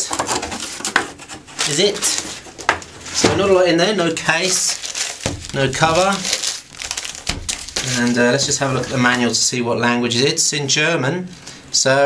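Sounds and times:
plastic wrapping crinkling: 0.0 - 9.5.

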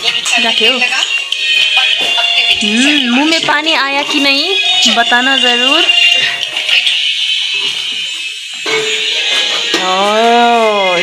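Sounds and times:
background song: 0.0 - 11.0
high-pitched tone: 2.5 - 3.6.

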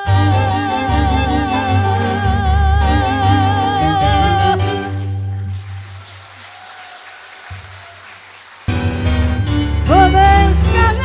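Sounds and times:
piano and string quartet: 0.0 - 5.8, 8.7 - 11.0.

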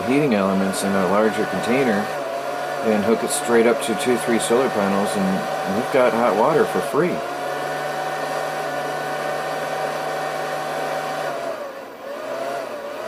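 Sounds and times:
machine hum with whine: 0.0 - 13.0.

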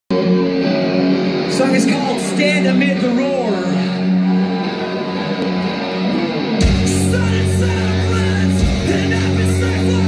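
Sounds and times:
rock band playing: 0.1 - 10.0.

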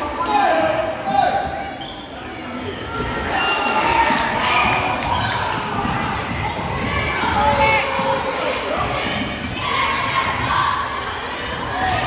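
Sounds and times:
echoing voices: 0.0 - 12.0.

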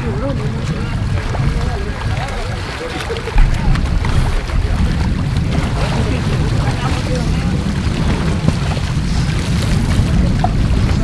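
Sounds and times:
faint voices: 0.0 - 11.0
pool water splashing: 0.0 - 11.0
wind on microphone: 0.0 - 11.0.

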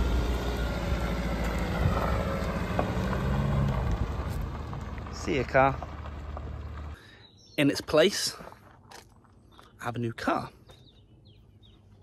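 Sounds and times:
car engine hum: 0.0 - 7.0
tyres rolling on gravel: 0.0 - 7.0.

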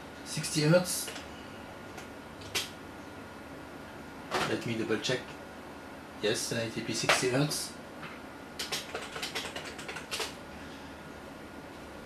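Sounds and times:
typing on computer keyboard: 2.0 - 2.7, 8.6 - 10.4.

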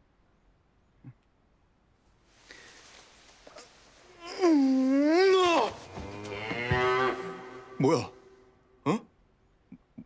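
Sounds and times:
man groaning: 4.2 - 5.8, 7.6 - 9.1.

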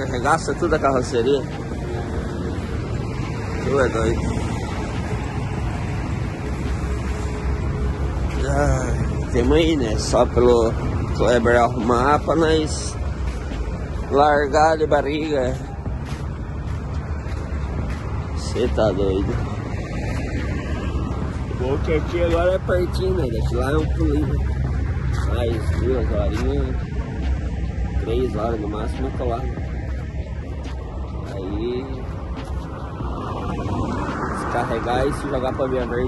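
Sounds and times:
low vehicle rumble: 0.0 - 36.0
wind buffeting microphone: 0.0 - 36.0.

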